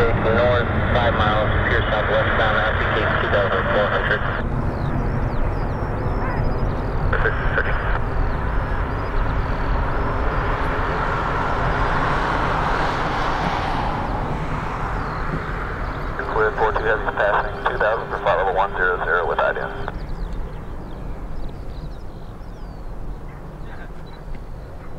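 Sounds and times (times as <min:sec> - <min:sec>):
jet engines rumbling: 0:00.0 - 0:24.9.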